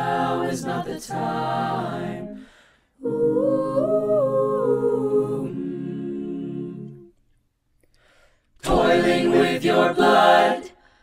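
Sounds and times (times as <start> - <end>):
a cappella ensemble singing a chord: 0.0 - 7.2, 8.6 - 11.0.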